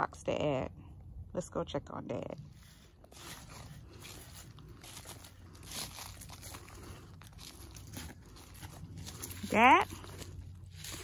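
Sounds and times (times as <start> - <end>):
footsteps crunching dry leaves: 2.5 - 11.0.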